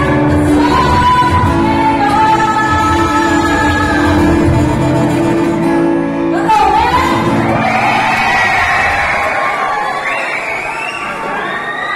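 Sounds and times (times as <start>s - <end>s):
audience cheering and whooping: 7.2s - 11.9s.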